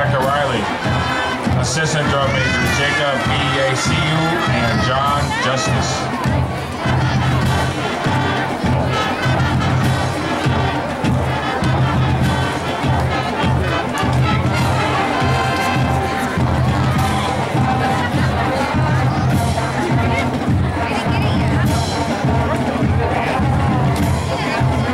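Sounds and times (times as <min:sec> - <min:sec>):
crowd noise: 0:00.0 - 0:24.9
marching band playing: 0:00.0 - 0:24.9.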